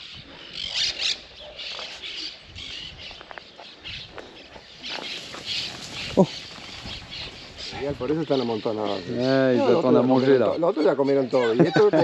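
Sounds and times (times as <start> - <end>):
short rustling crunches: 4.7 - 7.9.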